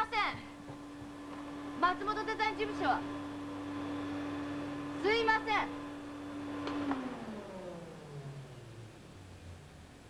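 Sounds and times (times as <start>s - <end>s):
machine hum winding down: 0.6s - 10.0s.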